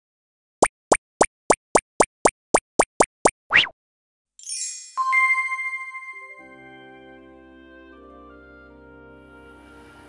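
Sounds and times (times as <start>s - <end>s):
cartoon plopping pops: 0.6s - 3.8s.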